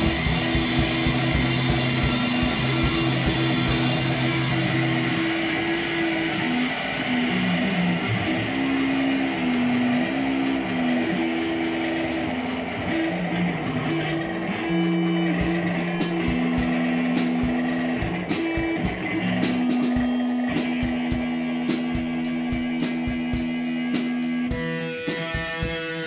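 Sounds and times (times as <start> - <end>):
drums with cymbal crashes: 0.0 - 11.8, 14.7 - 26.0
distorted electric guitar: 0.0 - 26.0.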